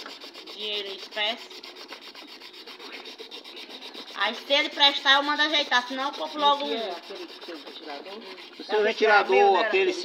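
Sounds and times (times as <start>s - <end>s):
rubbing and scraping of plastic parts: 0.0s - 8.7s.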